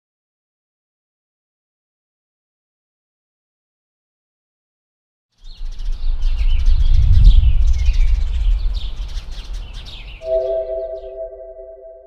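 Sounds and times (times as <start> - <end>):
birds chirping: 5.4 - 12.0
held musical chord: 10.2 - 12.0.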